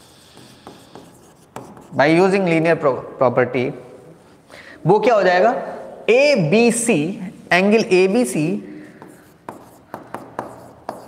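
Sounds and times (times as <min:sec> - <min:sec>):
stylus writing on glass screen: 0:00.0 - 0:02.4, 0:08.9 - 0:11.0
stylus tapping screen: 0:09.0 - 0:11.0.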